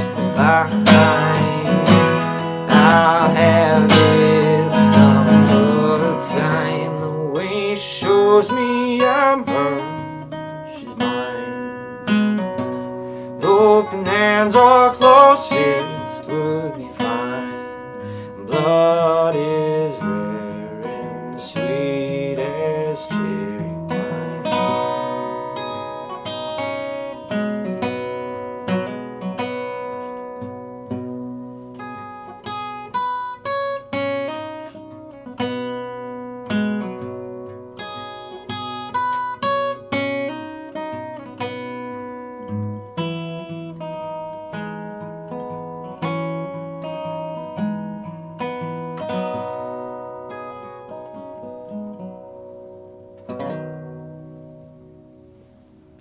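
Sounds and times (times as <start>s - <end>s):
fingerpicked acoustic guitar: 0.0s - 56.0s.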